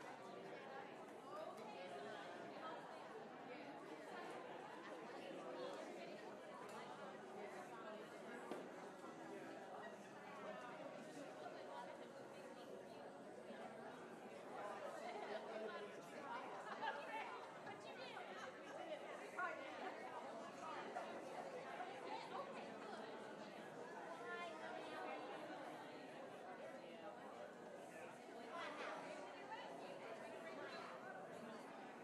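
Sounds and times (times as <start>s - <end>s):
crowd chattering: 0.0s - 32.0s.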